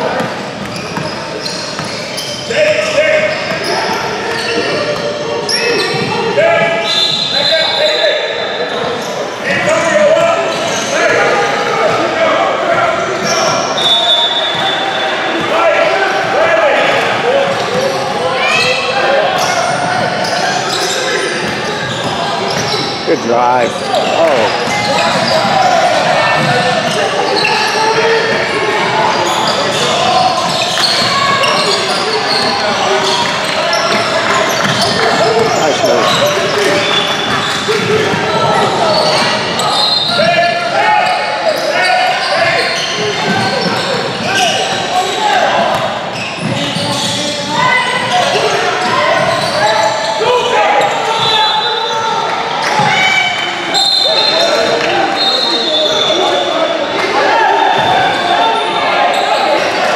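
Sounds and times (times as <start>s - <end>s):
voices calling out: 0.8s - 59.9s.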